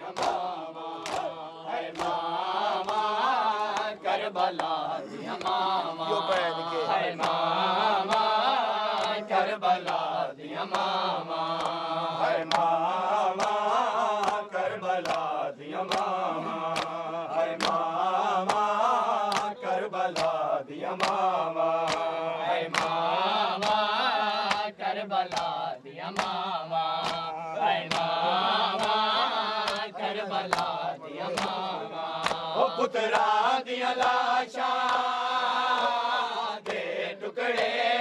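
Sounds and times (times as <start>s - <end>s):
hands slapping chests: 0.0s - 9.2s, 9.8s - 37.8s
men chanting a lament: 0.0s - 38.0s.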